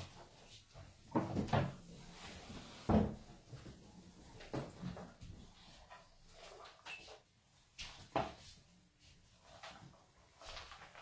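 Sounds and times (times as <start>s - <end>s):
objects knocking and clunking: 0.8s - 2.0s, 2.8s - 7.2s.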